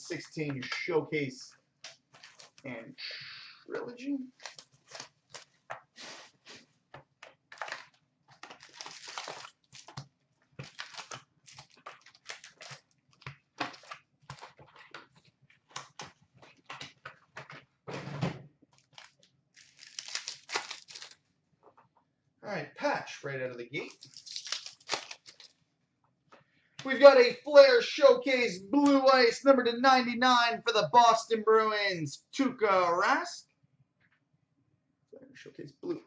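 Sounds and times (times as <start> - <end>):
wrappers rustling and crinkling: 2.1 - 2.7, 4.3 - 6.8, 7.5 - 16.7, 18.8 - 21.2, 23.8 - 25.6.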